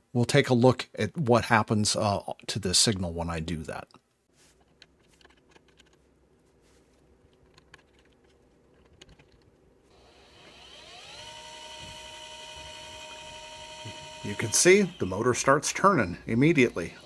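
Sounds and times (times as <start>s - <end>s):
electric motor whine: 9.9s - 15.8s.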